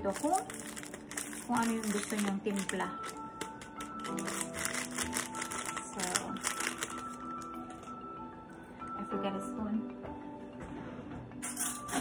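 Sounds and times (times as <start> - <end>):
foil sachet crinkling: 0.0 - 7.9
background music: 0.0 - 12.0.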